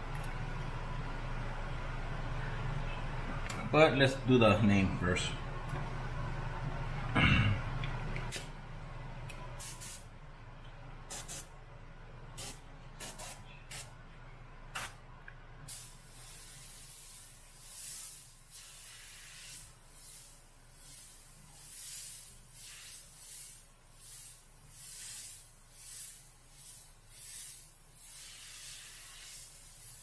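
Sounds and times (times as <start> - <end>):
airbrush hissing: 9.6 - 10.0, 15.7 - 30.0.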